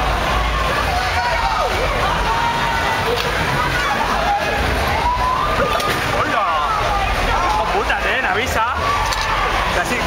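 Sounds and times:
riders shouting: 0.0s - 10.0s.

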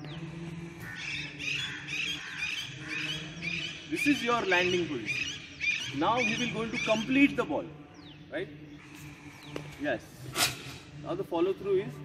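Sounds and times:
birds chirping: 0.0s - 11.7s.

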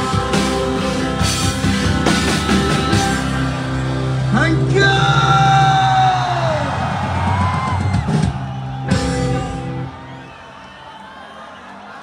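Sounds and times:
rock band playing: 0.0s - 10.8s.

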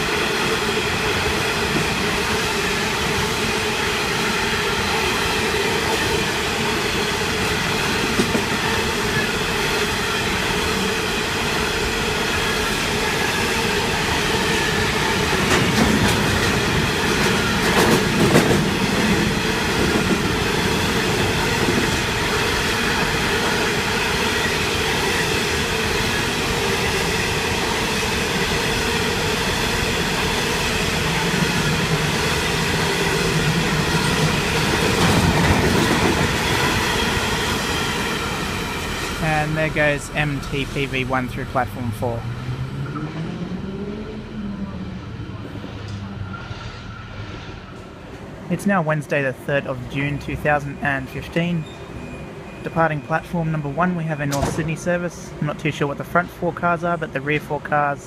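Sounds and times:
freight train wheels rumbling: 0.0s - 58.0s
wheels clacking over rail joints: 14.3s - 23.6s.

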